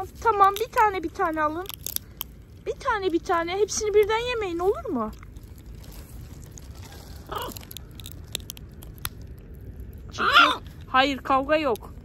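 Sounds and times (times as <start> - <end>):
beaks cracking nuts: 0.0 - 10.9.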